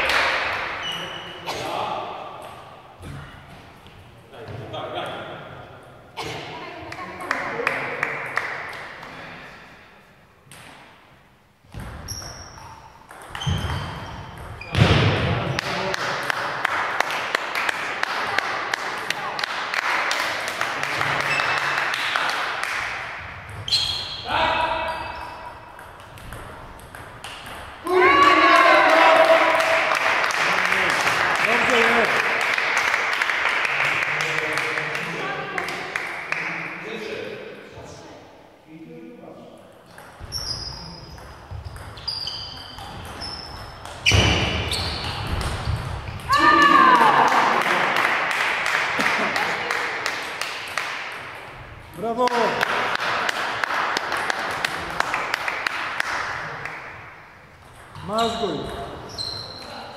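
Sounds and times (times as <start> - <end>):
player shouting in celebration: 46.3 - 47.5.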